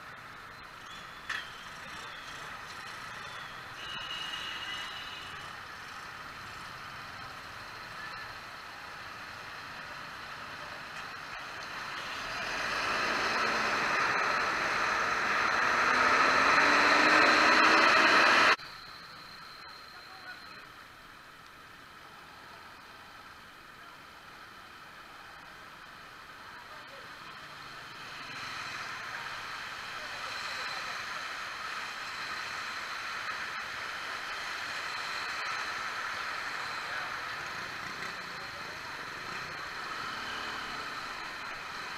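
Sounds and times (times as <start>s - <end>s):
motorcycle engine revving: 11.8s - 18.6s.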